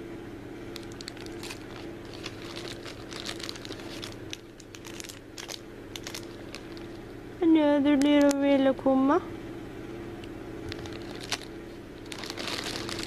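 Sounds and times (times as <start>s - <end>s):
plastic bag crinkling: 0.7s - 7.1s, 10.6s - 13.0s.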